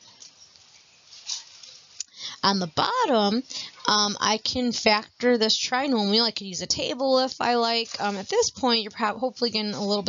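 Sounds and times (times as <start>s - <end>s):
low room hiss: 0.0s - 10.0s
stylus scratching on tablet: 7.0s - 10.0s.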